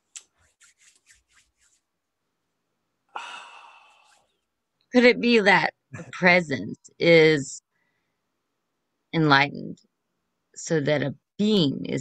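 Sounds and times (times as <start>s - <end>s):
sighed oh: 3.2s - 3.9s.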